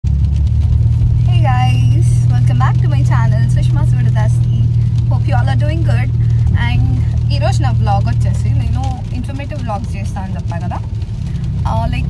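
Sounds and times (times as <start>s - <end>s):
car engine idling: 0.0s - 12.0s
woman speaking: 1.3s - 10.9s, 11.6s - 12.0s.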